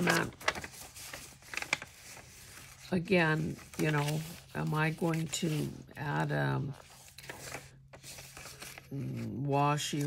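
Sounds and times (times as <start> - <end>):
paper sheets rustling: 0.0 - 10.0.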